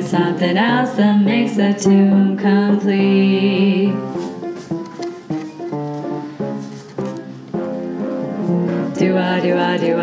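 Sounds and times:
swing jazz rhythm section: 4.0s - 9.6s.

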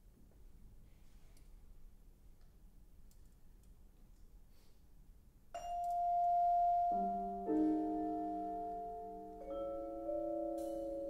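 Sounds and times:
vibraphone note ringing: 5.6s - 11.0s.

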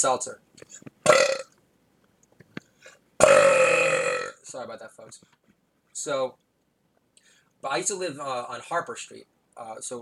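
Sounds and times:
man burping loudly: 1.0s - 1.6s, 3.2s - 4.5s.

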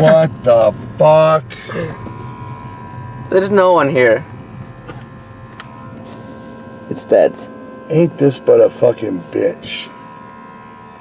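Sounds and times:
car cabin hum: 0.0s - 11.0s
faint high whine: 0.0s - 11.0s.

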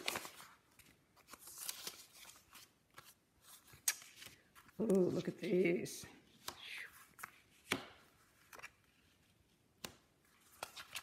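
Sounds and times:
paper rustling: 0.0s - 5.6s, 10.2s - 11.0s.

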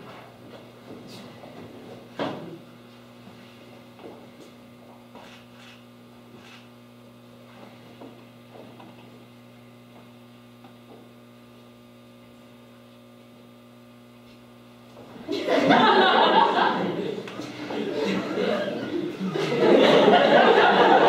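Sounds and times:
low electrical mains hum: 0.0s - 21.0s.

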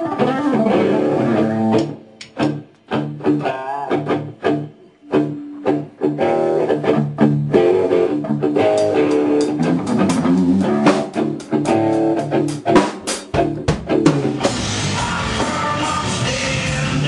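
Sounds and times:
drum kit: 0.0s - 17.0s
electric guitar notes: 0.0s - 17.0s
metal band music: 0.0s - 17.0s.

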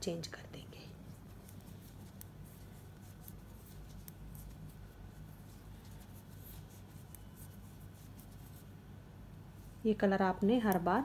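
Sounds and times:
low steady hum: 0.0s - 11.0s
knitting needles clicking: 10.4s - 11.0s.

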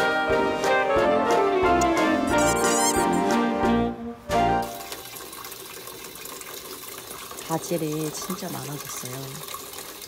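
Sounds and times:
background music: 0.0s - 4.9s.

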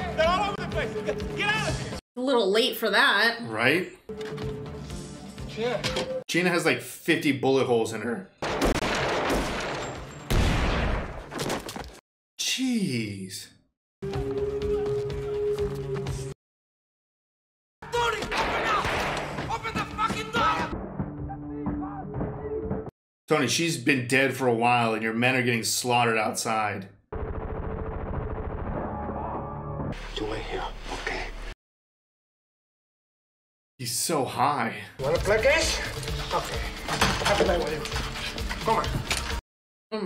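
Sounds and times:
heavy gunfire: 8.4s - 11.2s.

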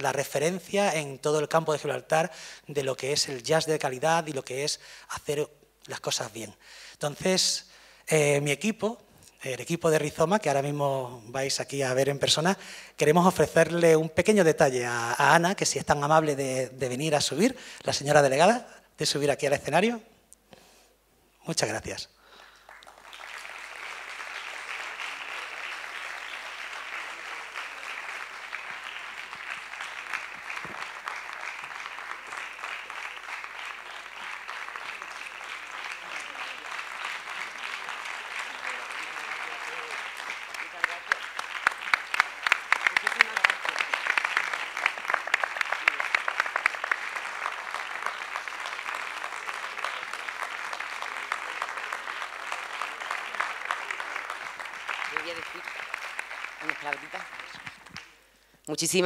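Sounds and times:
audience applause: 22.4s - 58.2s.

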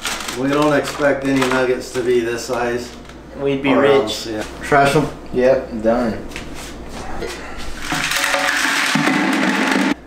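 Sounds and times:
rocks rattling into plastic bucket: 7.9s - 10.0s.

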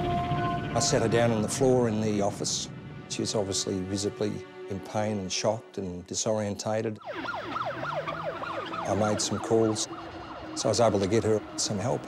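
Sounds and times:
ambulance siren yelping: 7.0s - 12.0s.

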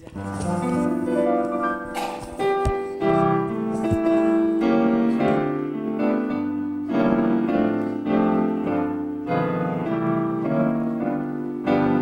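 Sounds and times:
digital piano chords: 0.0s - 12.0s.

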